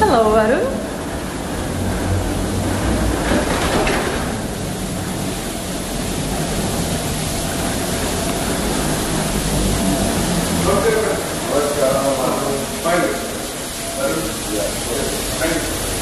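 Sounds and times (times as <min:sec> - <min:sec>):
boarding bridge rumble and hiss: 0:00.0 - 0:16.0
faint steady whine: 0:00.0 - 0:16.0.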